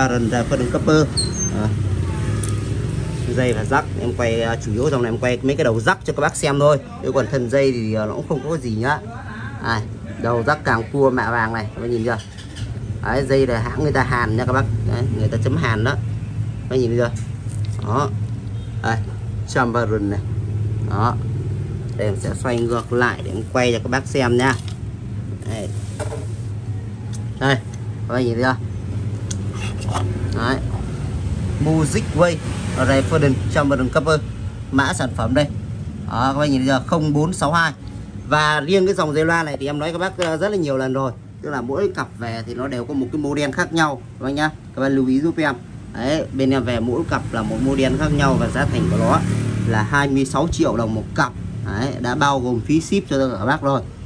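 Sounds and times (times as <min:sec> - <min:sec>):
vehicle engine rumbling: 0:00.0 - 0:06.6, 0:12.0 - 0:41.4
man speaking: 0:03.1 - 0:12.2, 0:22.0 - 0:24.7, 0:25.4 - 0:26.0, 0:27.3 - 0:28.7.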